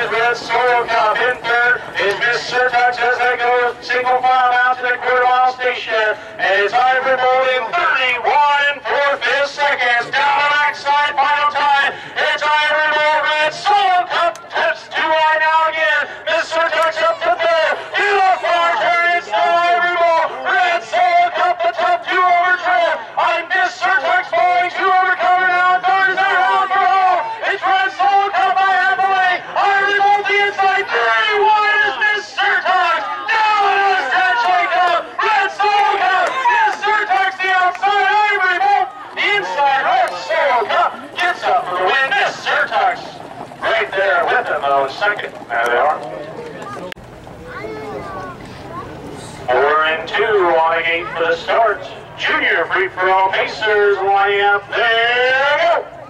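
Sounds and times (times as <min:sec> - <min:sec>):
man announcing rapidly: 0:00.0 - 0:47.0, 0:48.1 - 0:56.0.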